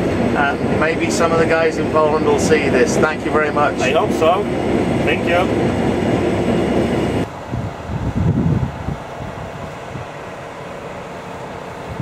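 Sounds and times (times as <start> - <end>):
combine harvester drone in cab: 0.0 - 12.0
low uneven rumbling outdoors: 0.0 - 12.0.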